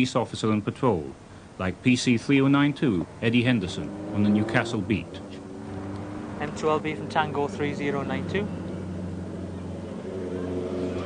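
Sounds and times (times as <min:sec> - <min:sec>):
vehicle engine humming: 0:01.0 - 0:11.0.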